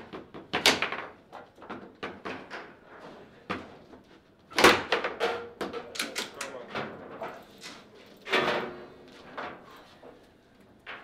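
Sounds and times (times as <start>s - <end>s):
foosball ball knocks and clacks: 0.0s - 2.7s.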